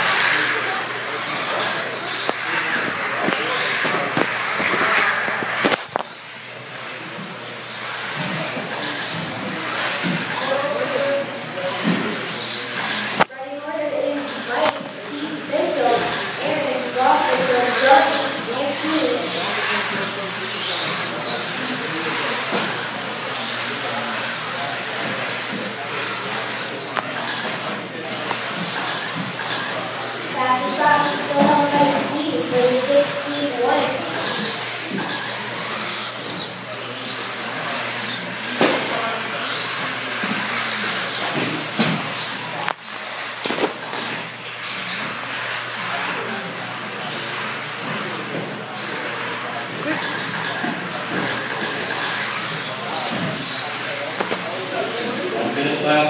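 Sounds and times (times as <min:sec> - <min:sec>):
electric toy car motors whining: 0:00.0 - 0:56.0
people talking: 0:00.0 - 0:56.0.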